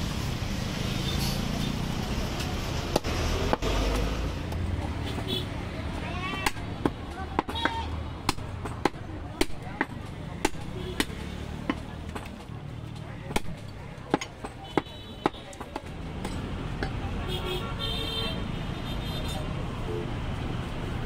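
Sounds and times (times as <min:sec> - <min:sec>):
low street traffic rumble: 0:00.0 - 0:21.0
voices: 0:03.4 - 0:20.2
cleaver chopping meat: 0:06.3 - 0:12.4, 0:13.3 - 0:16.9.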